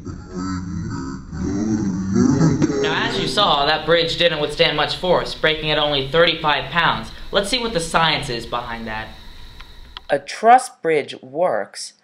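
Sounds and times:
boys groaning and laughing: 0.0 - 3.7
man speaking: 2.6 - 9.2.

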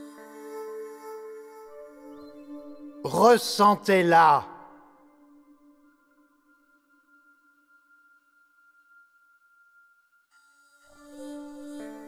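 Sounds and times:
ambient meditation music: 0.0 - 12.0.

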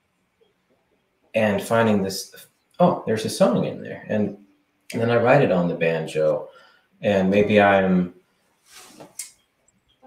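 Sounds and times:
man speaking: 1.4 - 8.2
faint in-breath: 6.5 - 7.0.

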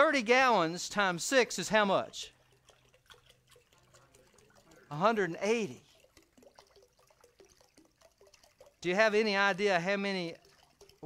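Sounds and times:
water pouring into crock: 0.0 - 11.0.

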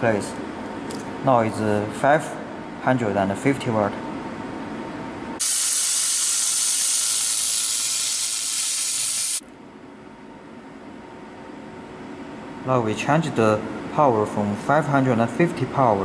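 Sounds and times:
laser welder hissing: 5.4 - 9.4.

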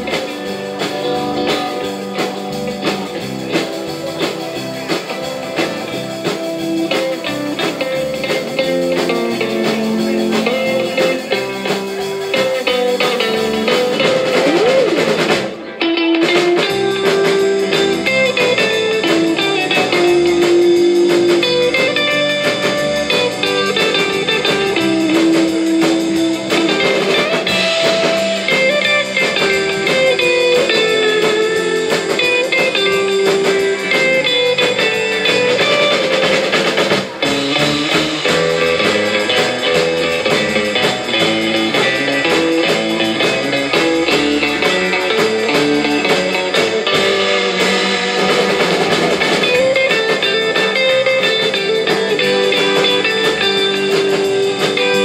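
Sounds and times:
bass guitar: 0.0 - 55.0
drum kit: 0.0 - 55.0
electric lead guitar melody: 0.0 - 55.0
rhythm guitar: 0.0 - 55.0.

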